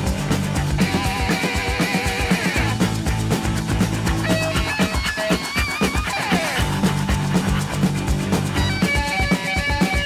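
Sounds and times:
electric guitar lead: 0.0s - 10.0s
rock band playing: 0.0s - 10.0s.

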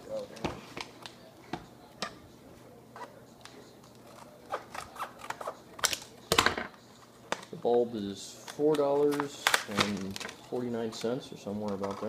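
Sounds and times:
stiff plastic crackling: 8.5s - 12.0s.

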